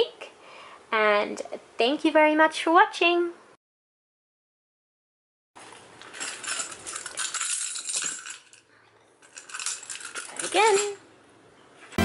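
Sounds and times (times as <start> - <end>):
metal clinking and jingling: 6.0 - 11.0.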